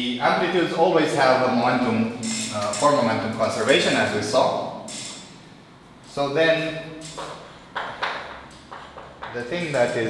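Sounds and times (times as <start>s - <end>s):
chalk tapping on blackboard: 7.0s - 10.0s.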